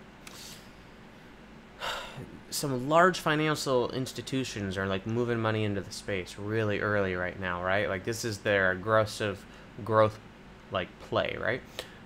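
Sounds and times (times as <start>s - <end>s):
sharp intake of breath: 1.8s - 2.3s
man breathing: 1.8s - 2.4s, 11.7s - 12.0s.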